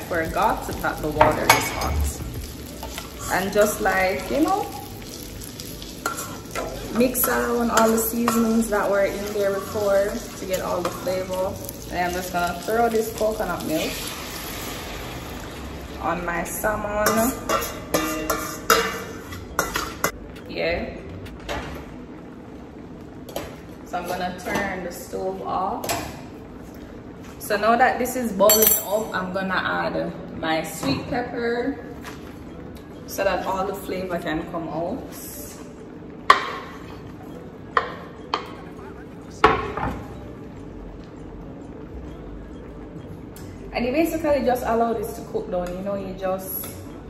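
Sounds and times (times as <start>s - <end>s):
metal clinking on steel bowl: 28.5s - 29.1s.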